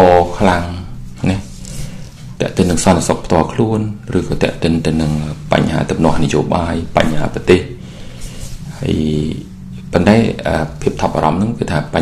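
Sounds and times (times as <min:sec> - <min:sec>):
man speaking: 0:00.0 - 0:07.8, 0:08.6 - 0:12.0
steady low hum: 0:00.0 - 0:12.0.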